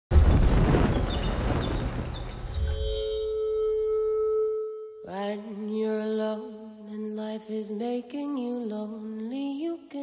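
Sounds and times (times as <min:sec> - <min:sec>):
loud low impact hit: 0:00.1 - 0:03.4
rushing noise: 0:00.1 - 0:03.4
held high note: 0:02.6 - 0:05.1.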